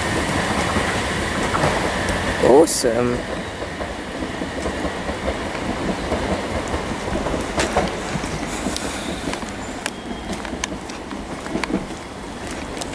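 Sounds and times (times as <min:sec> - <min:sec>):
sharp clicks of train wheels: 0:00.0 - 0:12.9
train wheels rumbling on rail: 0:00.0 - 0:12.9.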